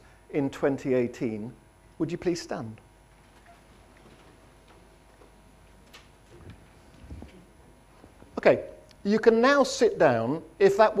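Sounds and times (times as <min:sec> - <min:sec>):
faint clicks and knocks of chairs: 0:03.1 - 0:09.0.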